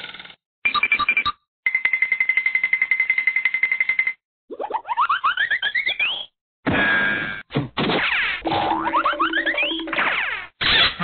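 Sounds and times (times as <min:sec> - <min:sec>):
springy boings: 0:06.6 - 0:10.8.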